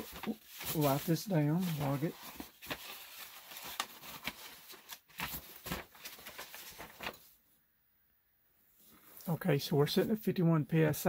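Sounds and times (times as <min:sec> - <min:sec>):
paper rustling: 0:00.0 - 0:07.4.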